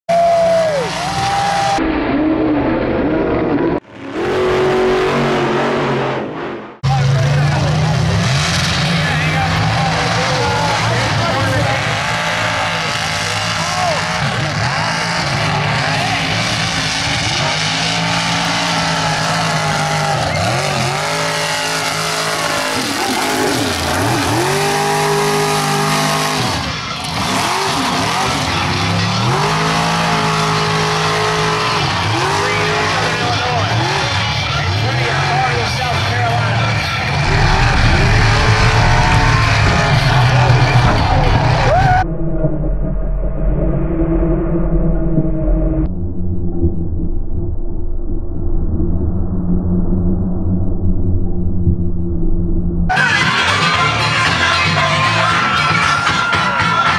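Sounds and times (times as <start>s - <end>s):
truck engines revving: 0.1s - 42.0s.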